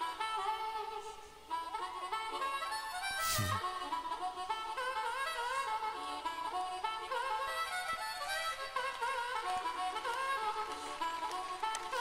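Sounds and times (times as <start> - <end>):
harmonica melody with bent notes: 0.0 - 12.0.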